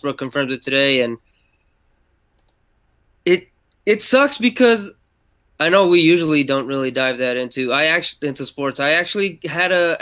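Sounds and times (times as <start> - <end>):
faint short clicks: 2.3 - 2.6
person speaking: 3.3 - 5.0, 5.6 - 10.0.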